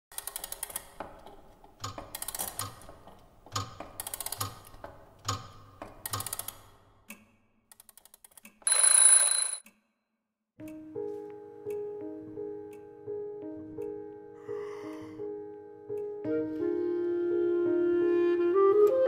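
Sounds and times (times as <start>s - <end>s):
alarm clock bell ringing: 8.7s - 9.6s.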